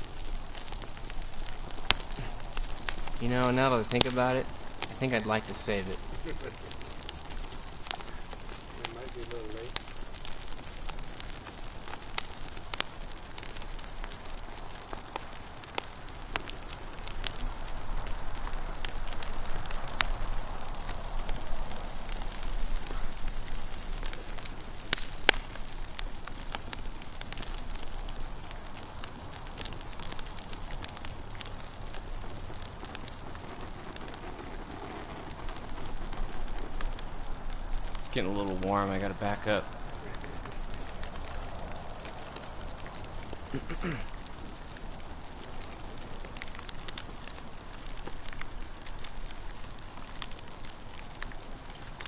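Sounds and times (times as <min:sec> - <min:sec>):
burning wood crackling: 0:00.0 - 0:52.0
fire roaring: 0:00.0 - 0:52.0.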